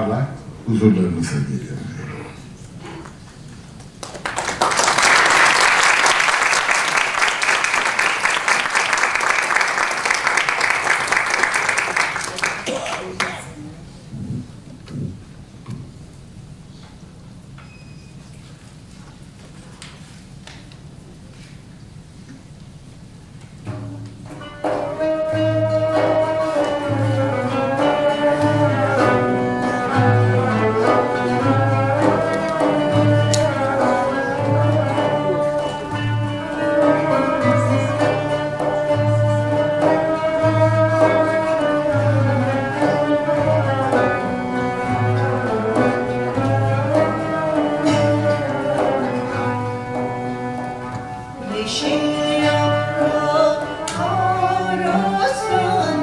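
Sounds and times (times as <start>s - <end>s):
folk ensemble playing: 4.3s - 14.4s, 22.5s - 56.0s
frame drum beat: 23.6s - 56.0s
woman singing: 36.4s - 41.8s, 51.4s - 56.0s.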